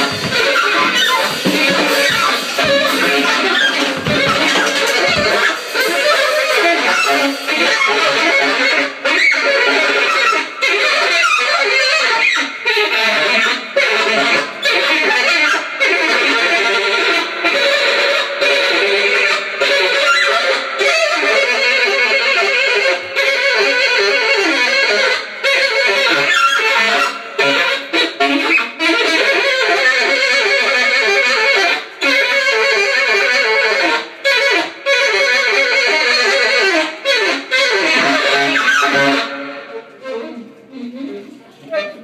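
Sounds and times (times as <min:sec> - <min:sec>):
live band with saxophone: 0:00.0 - 0:42.0.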